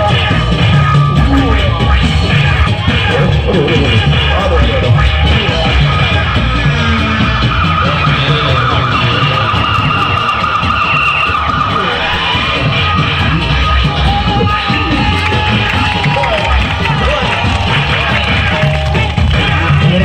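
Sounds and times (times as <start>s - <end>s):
heavy low beat: 0.0s - 20.0s.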